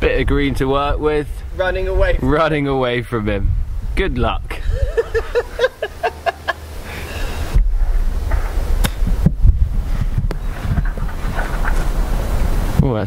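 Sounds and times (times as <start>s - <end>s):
wind buffeting microphone: 0.0s - 13.0s
laughter in choppy bursts: 4.6s - 7.5s.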